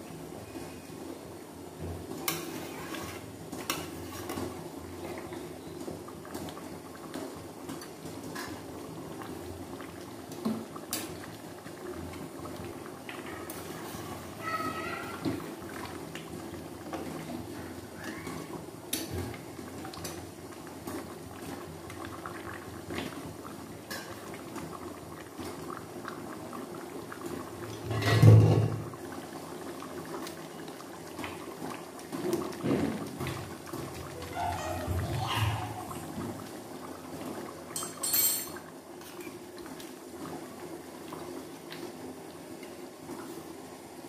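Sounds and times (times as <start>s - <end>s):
curry bubbling in a pan: 0.0s - 44.0s.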